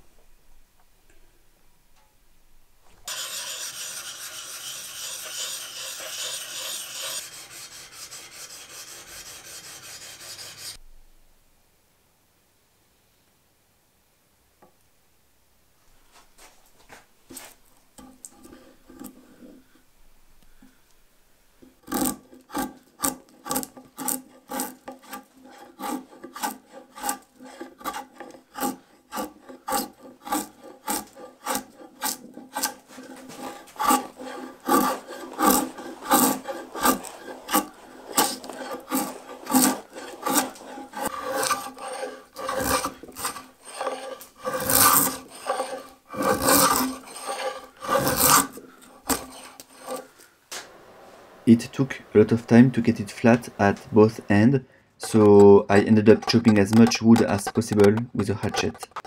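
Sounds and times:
draw knife scraping bark: 3.1 - 10.8, 17.4 - 19.6, 21.8 - 50.1, 55.0 - 59.0.

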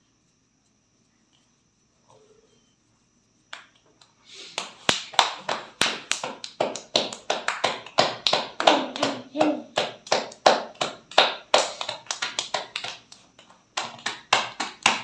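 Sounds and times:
dough slapped by hand: 4.6 - 15.0.

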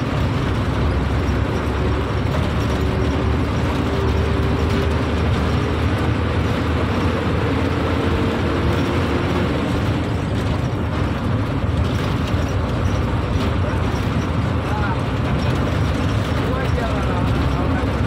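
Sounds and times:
bus engine rumble: 0.0 - 18.0.

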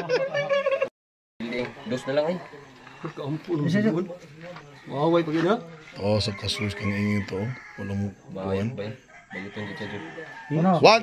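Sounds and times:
men laughing heartily: 0.0 - 0.9.

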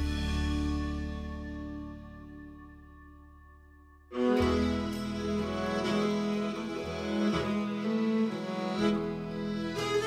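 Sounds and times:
slow instrumental music: 0.0 - 10.0.

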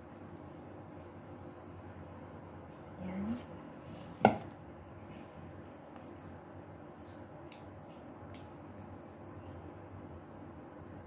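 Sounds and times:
knock against a plate: 4.2 - 4.5.

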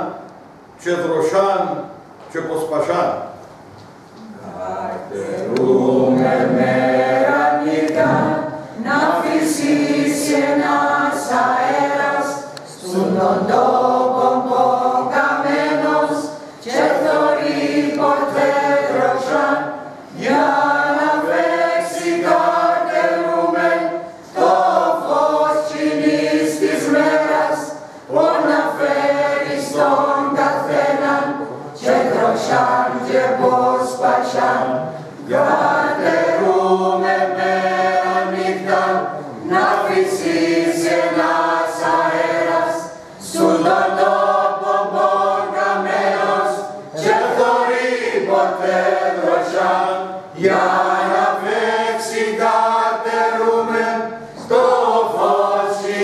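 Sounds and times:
group singing unaccompanied: 4.8 - 56.0.

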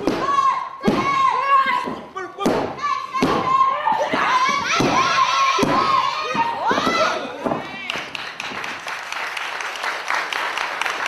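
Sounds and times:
bodies hitting wrestling mat: 0.0 - 7.9
loud shouting voices: 0.1 - 7.8.

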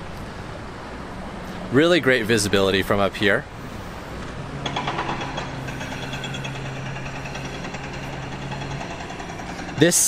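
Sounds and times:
engine running with rhythmic clatter: 3.4 - 10.0.

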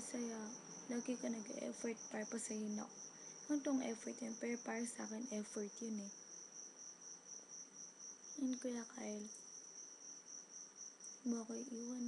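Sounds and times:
cricket trill: 0.0 - 12.0
low room hiss: 0.0 - 12.0.

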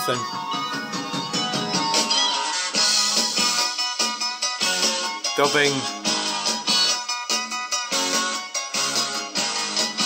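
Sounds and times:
vinyl record music at wrong speed: 0.0 - 10.0.

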